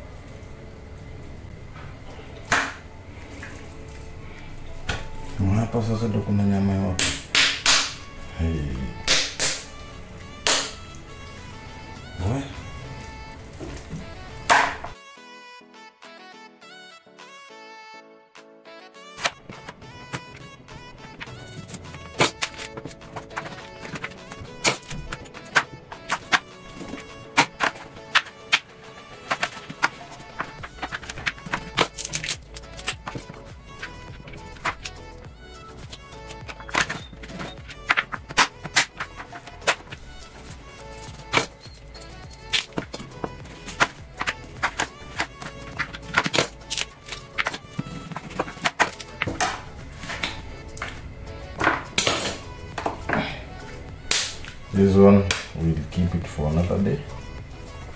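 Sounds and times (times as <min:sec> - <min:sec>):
background music: 0:00.0 - 0:57.9
knife chopping on plastic board: 0:14.4 - 0:15.0, 0:21.2 - 0:32.3.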